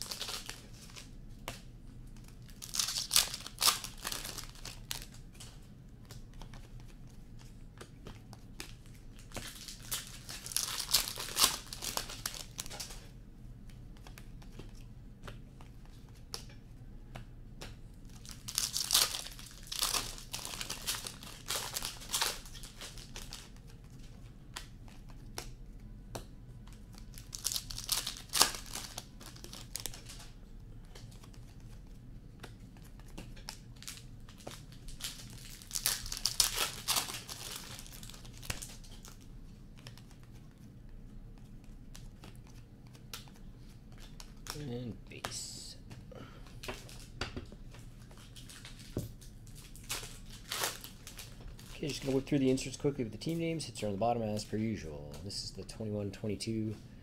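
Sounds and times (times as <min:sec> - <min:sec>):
packaging crinkling and rustling: 0:00.0 - 0:01.1, 0:02.2 - 0:06.6, 0:08.5 - 0:13.0, 0:18.1 - 0:25.2, 0:26.9 - 0:31.9, 0:32.9 - 0:39.2, 0:46.6 - 0:53.4.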